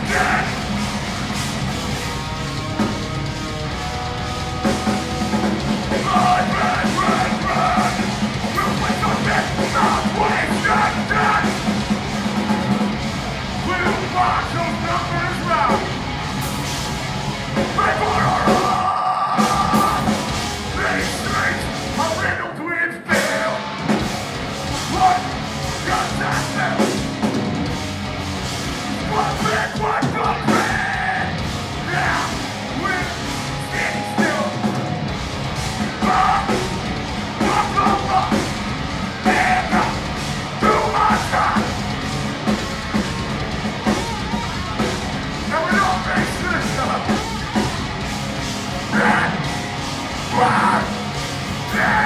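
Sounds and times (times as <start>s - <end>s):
drum kit: 0.0s - 22.4s, 23.1s - 52.0s
bass: 0.0s - 52.0s
distorted electric guitars: 0.0s - 52.0s
heavy metal band playing live: 0.0s - 52.0s.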